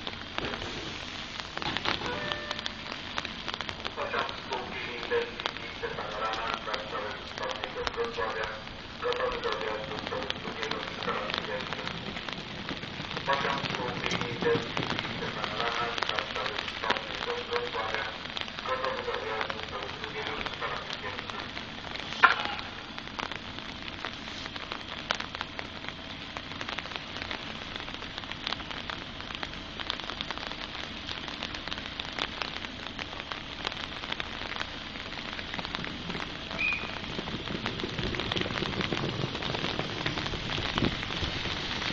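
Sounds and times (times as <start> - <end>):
rain pattering: 0.0 - 41.9.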